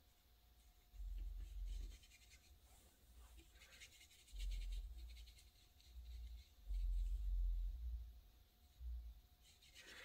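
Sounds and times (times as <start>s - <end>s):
brush strokes on paper: 0.0s - 7.7s, 8.6s - 10.0s.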